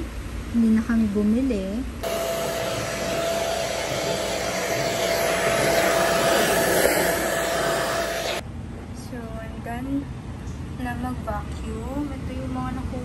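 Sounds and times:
vacuum cleaner motor whine: 2.0s - 8.4s.

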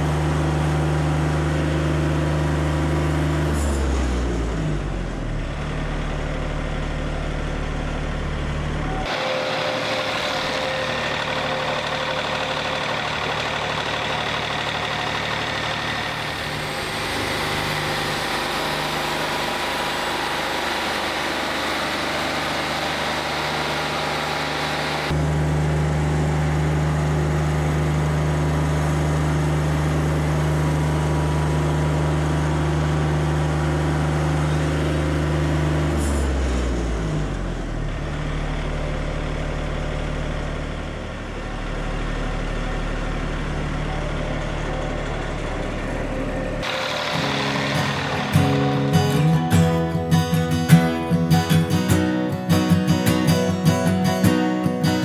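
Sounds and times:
sawmill engine drone: 0.0s - 55.0s.

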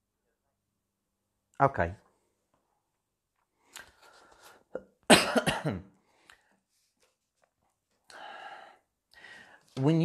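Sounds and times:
man coughing: 4.8s - 6.0s.

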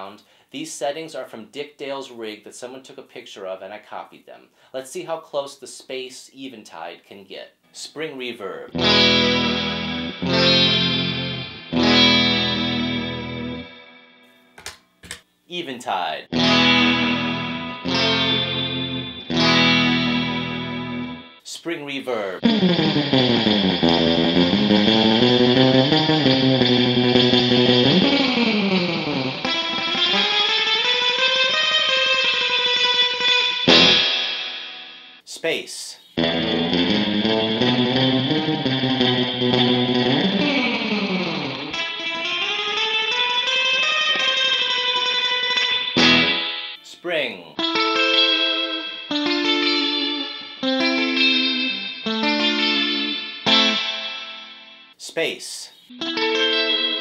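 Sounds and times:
surf electric guitar with reverb: 8.7s - 14.2s, 16.3s - 21.4s, 22.4s - 35.2s, 36.2s - 46.8s, 47.6s - 55.0s, 55.9s - 57.0s.

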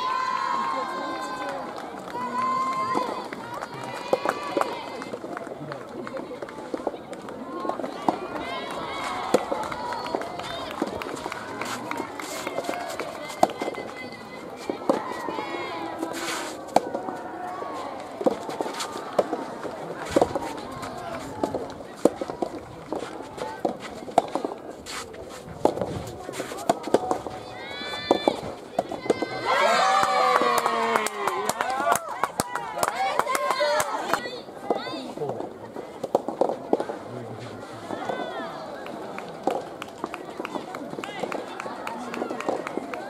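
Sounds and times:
rackets striking ball: 7.7s - 17.2s, 17.9s - 24.6s, 25.6s - 29.4s, 36.0s - 37.0s
people shouting: 29.0s - 34.3s.

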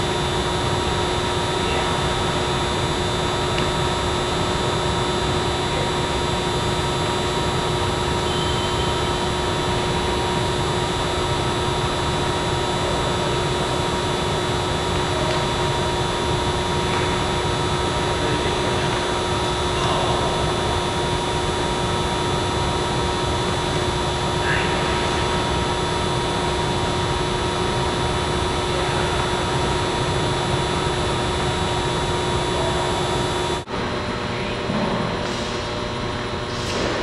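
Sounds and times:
steady whining tones: 0.0s - 37.0s
ventilation blower humming: 0.0s - 37.0s.

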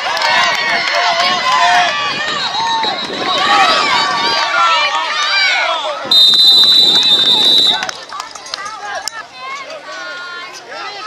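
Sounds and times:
children shouting and chattering: 0.0s - 6.1s, 7.3s - 11.0s.

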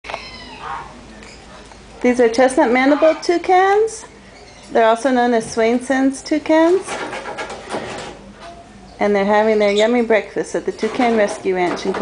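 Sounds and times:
birds calling: 4.0s - 4.9s.

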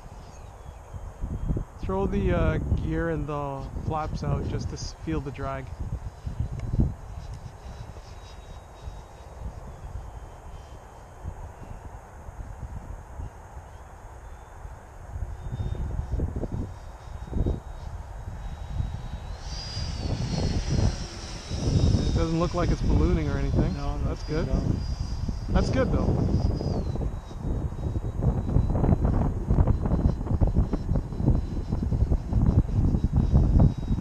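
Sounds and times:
electric ducted fan whine: 0.0s - 34.0s
wind buffeting microphone: 0.0s - 34.0s.

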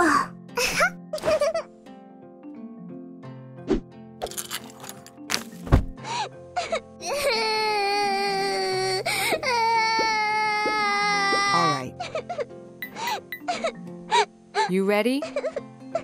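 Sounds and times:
light background music: 0.0s - 16.0s.

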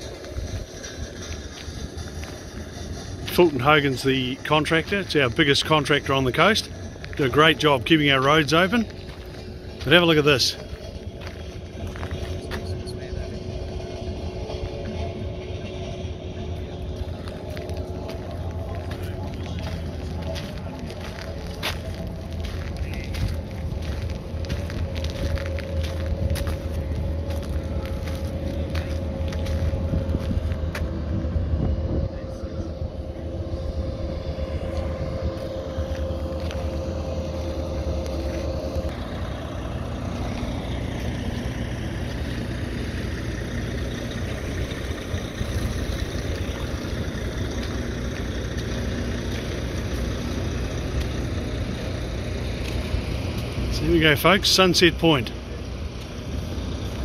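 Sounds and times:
vehicle engine running: 0.0s - 57.0s.

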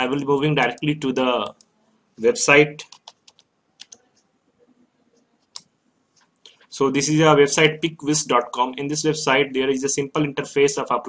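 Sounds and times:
computer mouse click: 2.8s - 4.2s.

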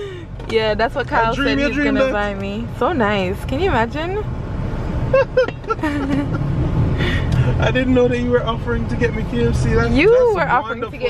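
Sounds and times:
voices: 0.0s - 4.3s, 7.4s - 11.0s
car engine rumble: 0.0s - 11.0s
surrounding traffic: 0.0s - 11.0s.

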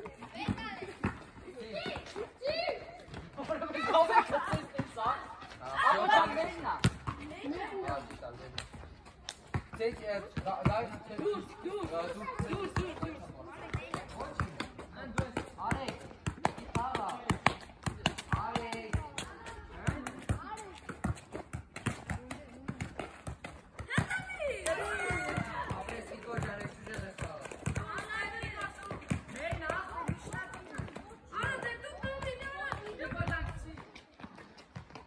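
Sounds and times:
people talking and calling out: 0.0s - 34.7s.

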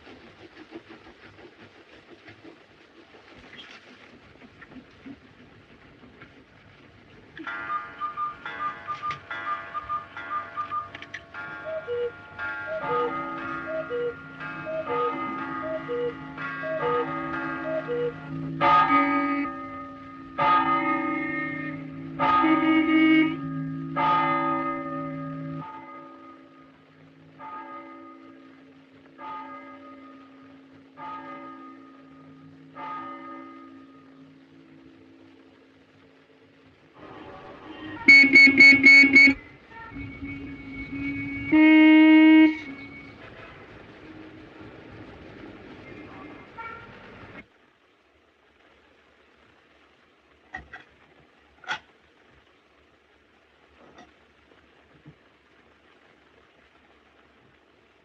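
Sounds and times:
low hum: 0.0s - 47.6s
church bells chiming: 7.4s - 26.8s, 27.4s - 34.4s.

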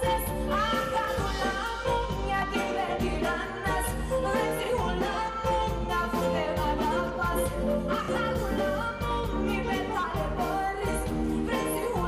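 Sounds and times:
live band playing: 0.0s - 12.0s
woman singing into microphone: 0.0s - 12.0s.

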